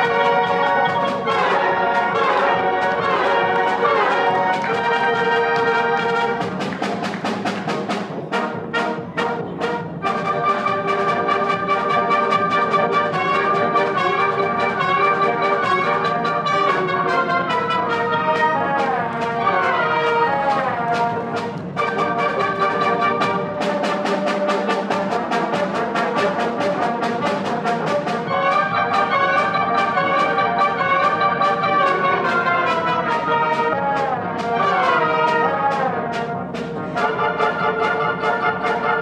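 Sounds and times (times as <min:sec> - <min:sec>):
wind band playing: 0:00.0 - 0:39.0.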